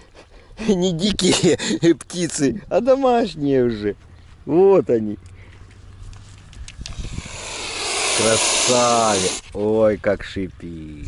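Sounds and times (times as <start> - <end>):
swan hissing: 6.9 - 9.5.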